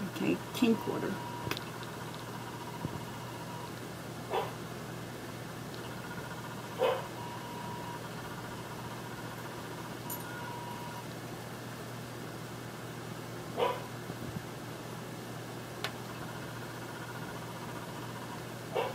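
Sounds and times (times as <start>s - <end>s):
faint steady whine: 0.0s - 18.9s
dog barking: 4.3s - 4.6s, 6.8s - 7.1s, 13.6s - 13.9s.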